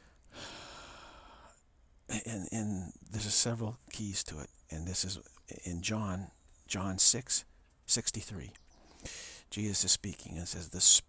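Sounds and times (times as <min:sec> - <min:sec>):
man breathing close to microphone: 0:00.0 - 0:01.6, 0:08.8 - 0:09.5.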